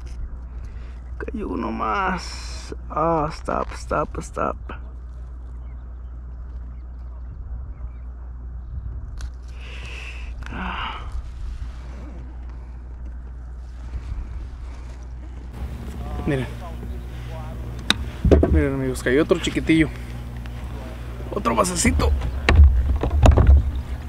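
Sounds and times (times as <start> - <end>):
low wind rumble on microphone: 0.0 - 2.1, 2.7 - 24.0
man speaking: 15.6 - 22.3.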